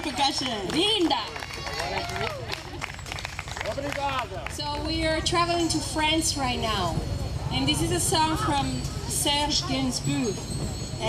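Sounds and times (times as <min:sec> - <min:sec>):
audience clapping: 0:00.0 - 0:04.9.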